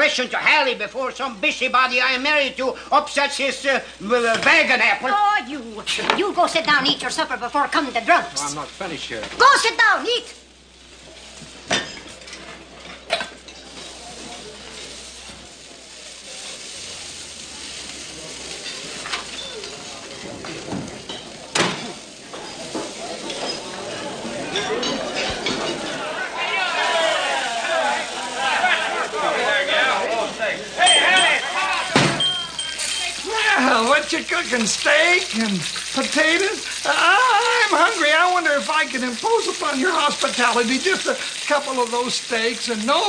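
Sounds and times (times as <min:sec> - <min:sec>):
food sizzling in a frying pan: 0:00.0 - 0:43.0
dishes clinking in a washtub: 0:11.7 - 0:13.8, 0:20.7 - 0:26.0, 0:30.8 - 0:33.3
indistinct voices: 0:13.6 - 0:40.8.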